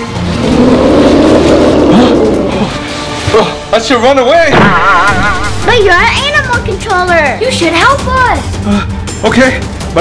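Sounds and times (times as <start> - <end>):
dinosaur roar: 0.2 - 2.9.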